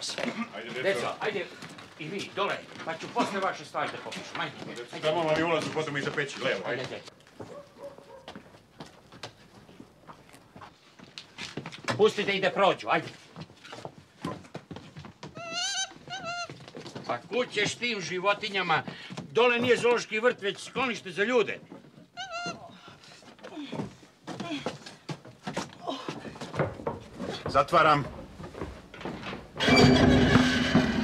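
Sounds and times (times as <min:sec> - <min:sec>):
footsteps on wooden stair: 0:04.0 - 0:12.0, 0:13.1 - 0:17.9, 0:21.6 - 0:29.7
animal high-pitched call: 0:15.4 - 0:16.6, 0:22.2 - 0:22.7
hatch knocks and scrapes: 0:29.6 - 0:31.0.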